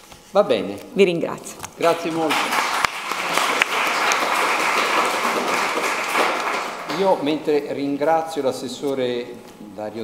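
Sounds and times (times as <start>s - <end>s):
audience applauding: 1.8s - 7.5s.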